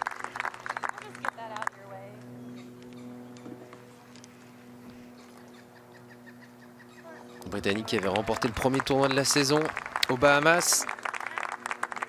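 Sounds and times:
steady low hum: 0.0 - 12.0
bird chirping: 5.1 - 7.5.

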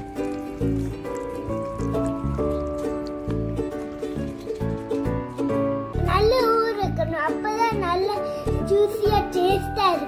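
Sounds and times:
background music: 0.0 - 10.0
child's voice: 6.0 - 10.0.

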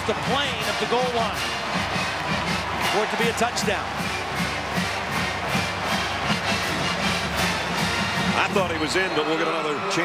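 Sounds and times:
music with drum beat: 0.0 - 9.2
crowd noise: 0.0 - 10.0.

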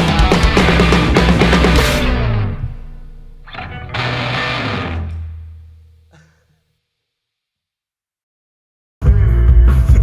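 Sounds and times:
instrumental rock band: 0.0 - 5.8
electric guitar final chord ringing: 0.3 - 5.8.

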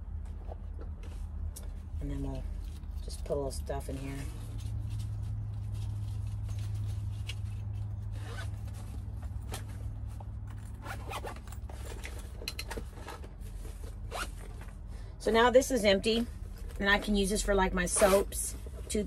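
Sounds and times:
zipper being pulled: 7.2 - 8.8, 10.5 - 12.1, 14.0 - 14.6.

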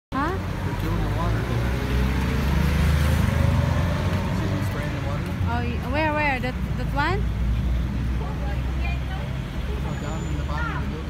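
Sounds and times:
vehicle engines rumbling: 0.1 - 11.0.

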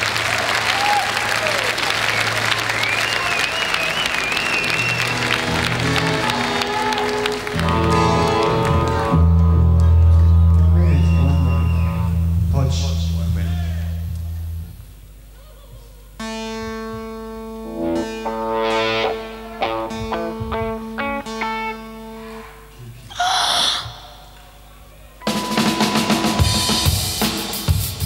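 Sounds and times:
slow held guitar chords: 5.1 - 15.0, 16.2 - 23.0
drum kit beating a rhythm: 16.2 - 21.9, 25.2 - 28.0
punk rock band playing: 16.2 - 22.5, 25.2 - 28.0.

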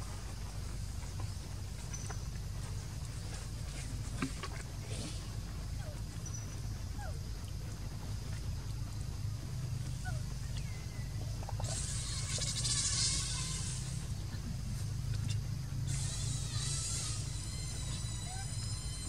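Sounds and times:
loud high fast buzzing: 11.7 - 14.2, 15.8 - 19.0.

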